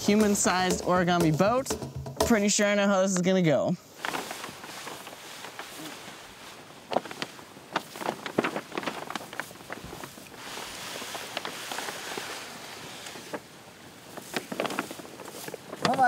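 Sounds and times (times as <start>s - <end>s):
paper sliding over grass: 3.8s - 16.0s
paper crackling and rustling: 3.9s - 16.0s.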